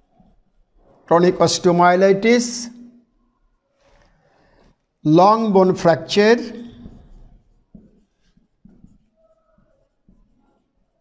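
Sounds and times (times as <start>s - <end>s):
marker pen writing on whiteboard: 0.0s - 11.0s
marker squeak: 8.7s - 10.9s.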